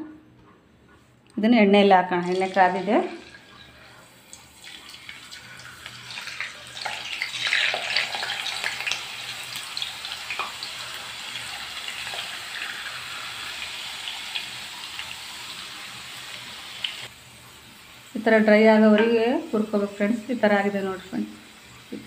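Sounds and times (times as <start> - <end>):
potato slices sizzling in oil: 2.2 - 22.0.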